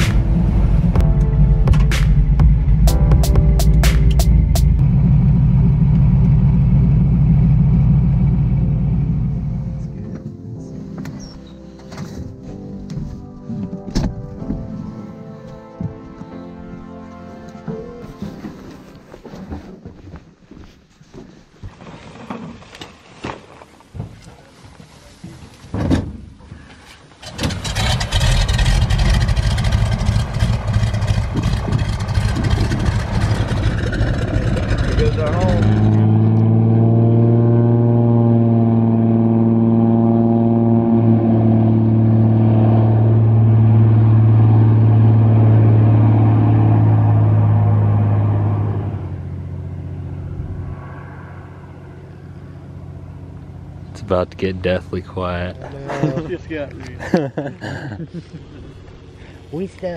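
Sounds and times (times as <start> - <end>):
floatplane engine and propeller: 4.1 - 11.6, 26.6 - 56.9, 58.1 - 59.9.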